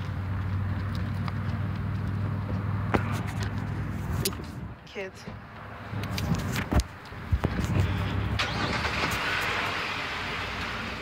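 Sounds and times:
car passing: 0:00.0 - 0:11.0
motor vehicle hum: 0:00.0 - 0:11.0.

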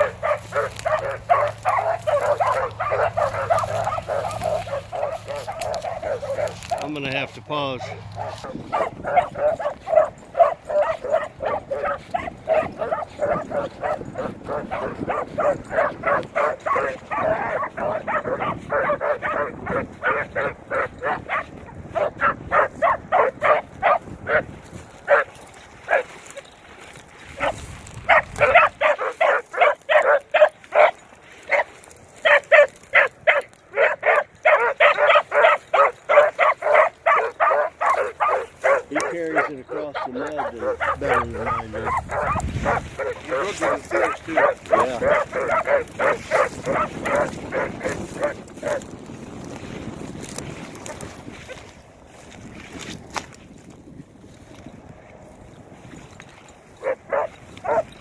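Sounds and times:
hounds barking: 0:00.0 - 0:52.3, 0:56.2 - 0:58.0.

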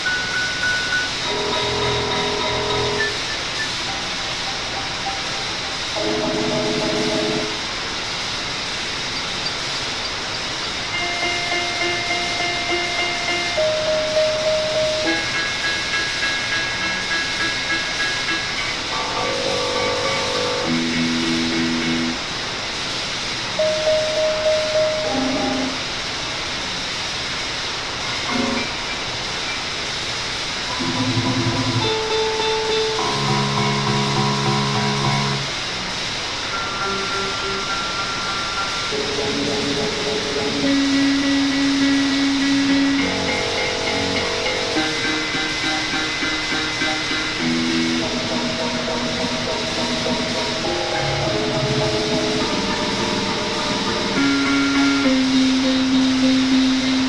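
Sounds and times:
noise hiss: 0:00.0 - 0:57.0.

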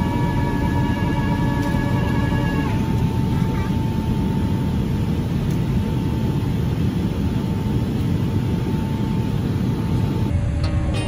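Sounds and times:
airliner cabin engine rumble: 0:00.0 - 0:11.0
thin steady whine: 0:00.0 - 0:11.0.

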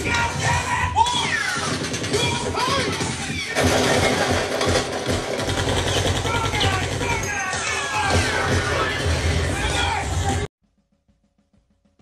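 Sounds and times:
mechanical rattle: 0:01.5 - 0:07.4.

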